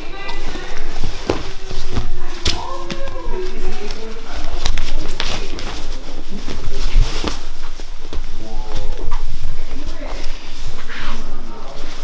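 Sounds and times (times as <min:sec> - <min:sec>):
bodies scuffing on mats: 0:00.2 - 0:04.0.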